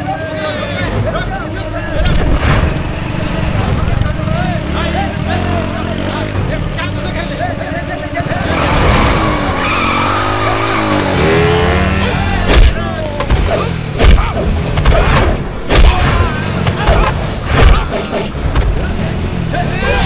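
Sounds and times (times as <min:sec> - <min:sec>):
tyres skidding on dirt: 0:00.5 - 0:14.0
motorcycle engine revving: 0:01.9 - 0:14.0.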